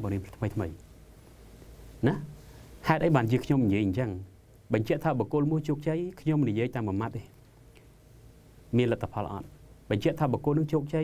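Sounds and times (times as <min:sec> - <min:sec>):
man speaking: 0:00.0 - 0:00.8, 0:02.0 - 0:07.4, 0:08.7 - 0:11.0.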